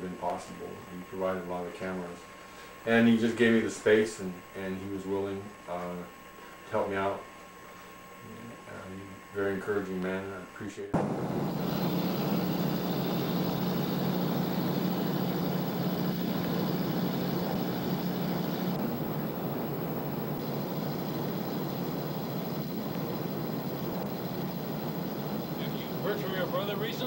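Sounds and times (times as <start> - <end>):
engine-like drone: 11.0 - 27.0
low hum: 11.0 - 27.0.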